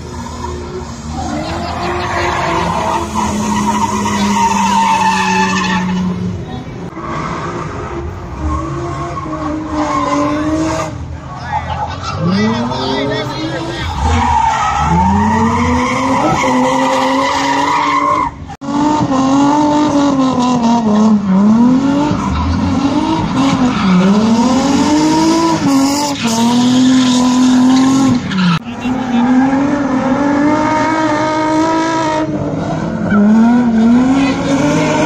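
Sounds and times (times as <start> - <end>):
car engines revving: 0.0 - 35.0.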